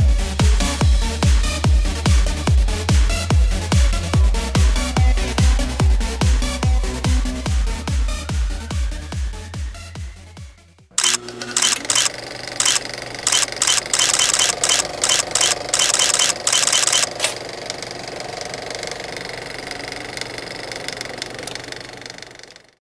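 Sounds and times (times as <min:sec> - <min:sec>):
drone motors humming: 0:11.0 - 0:22.4.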